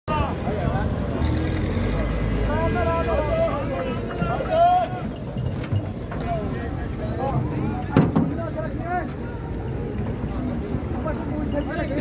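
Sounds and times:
vehicle engine rumble: 0.1s - 12.0s
men calling out: 2.3s - 5.5s.

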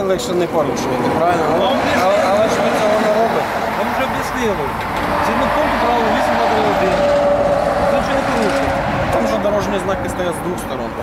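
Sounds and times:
men talking: 0.0s - 11.0s
road traffic: 0.0s - 11.0s.

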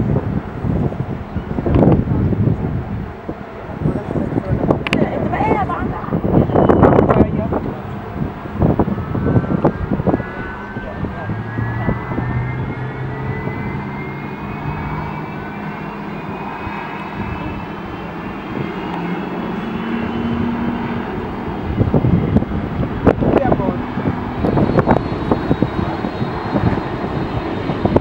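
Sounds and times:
jet engine whine: 0.0s - 28.0s
low steady engine drone: 0.0s - 28.0s.

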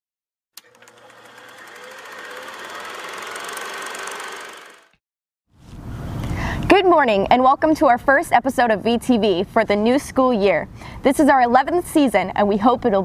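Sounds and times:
fast mechanical rattle: 0.6s - 5.0s.

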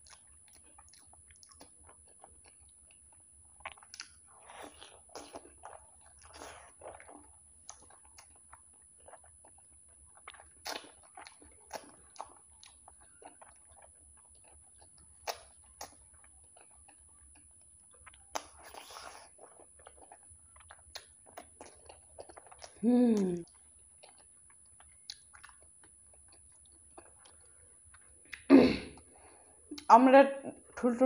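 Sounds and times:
chewing and wet mouth sounds: 0.0s - 29.9s.

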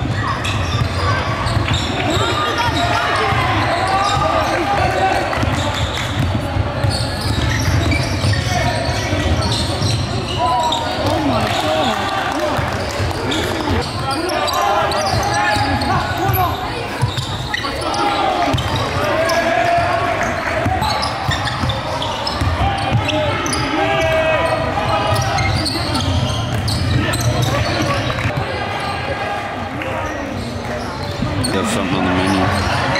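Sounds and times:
players and spectators calling: 0.0s - 32.9s.

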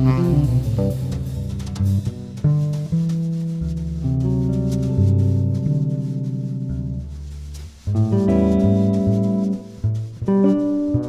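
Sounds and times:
saxophone line: 0.0s - 1.7s
electric guitar notes: 0.0s - 3.3s, 7.8s - 11.0s
bass notes: 0.0s - 11.0s.

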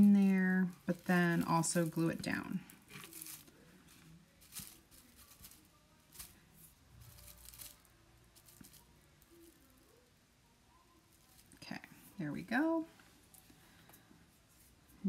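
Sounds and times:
faint rustling of dried straw: 0.0s - 15.0s.

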